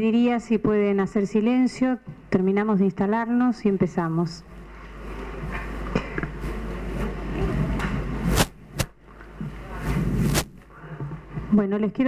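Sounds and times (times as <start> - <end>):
low mains hum: 0.0 - 12.0
microphone handling noise: 6.4 - 11.5.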